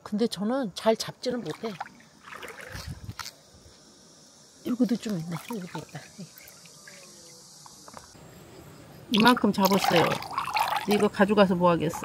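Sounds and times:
insects chirring: 0.1s - 12.0s
hand splashing in shallow water: 1.4s - 3.3s.

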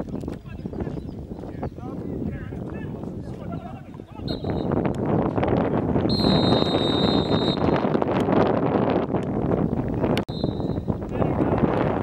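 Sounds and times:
wind on microphone: 0.0s - 12.0s
referee's whistle blast: 4.3s - 4.8s, 6.1s - 7.8s, 10.3s - 10.8s.

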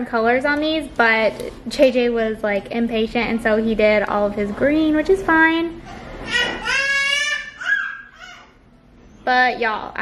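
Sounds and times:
toddler babbling or squealing: 6.3s - 8.6s.

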